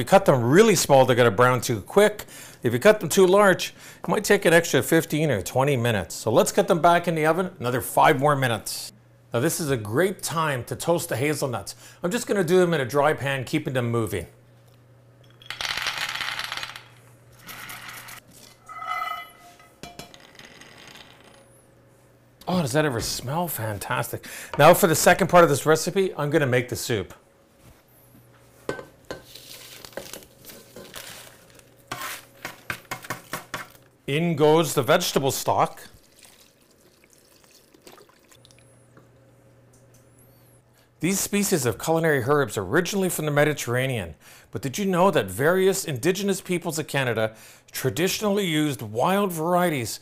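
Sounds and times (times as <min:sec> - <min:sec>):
liquid pouring and splashing: 0:35.9 - 0:38.7.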